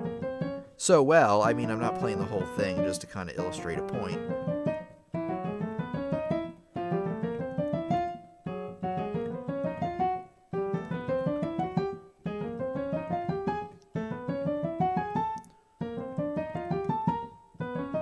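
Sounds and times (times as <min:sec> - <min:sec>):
piano scales: 0:00.0 - 0:18.0.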